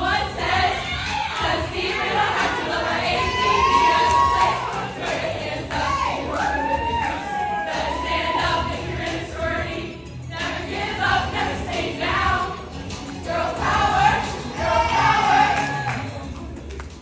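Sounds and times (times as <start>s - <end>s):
women singing together: 0.0s - 16.2s.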